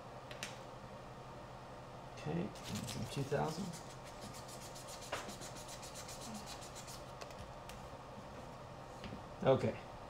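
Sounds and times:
sandpaper scratching carbon fiber: 2.6 - 7.0.

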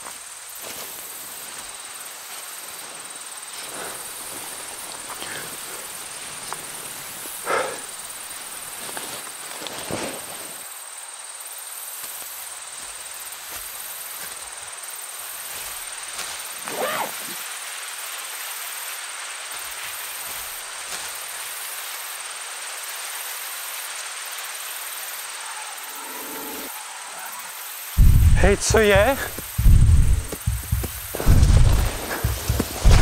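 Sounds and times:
insects chirring: 0.0 - 33.0.

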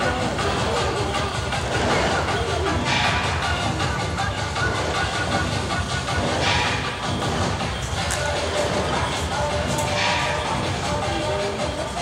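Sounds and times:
cymbals clashing: 0.0 - 12.0
drums beating rapidly: 0.0 - 12.0.

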